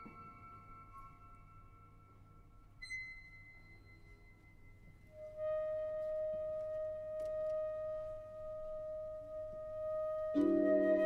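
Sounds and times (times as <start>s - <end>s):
quiet orchestral music: 0.0s - 11.0s.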